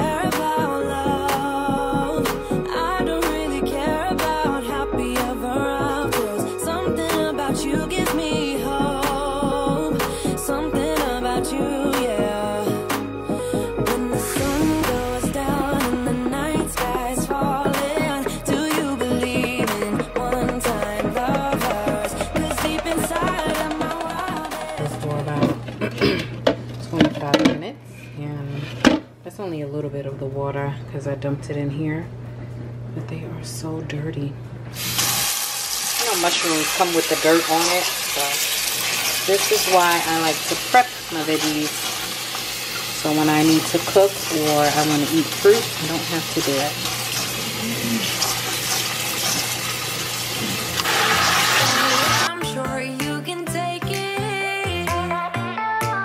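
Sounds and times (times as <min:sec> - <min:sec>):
background music: 0:00.0 - 0:26.5, 0:34.8 - 0:56.0
steady low hum: 0:24.2 - 0:34.8
woman speaking: 0:24.4 - 0:25.7, 0:26.8 - 0:32.1, 0:33.0 - 0:34.4, 0:36.0 - 0:38.4, 0:39.3 - 0:41.8, 0:43.0 - 0:46.8.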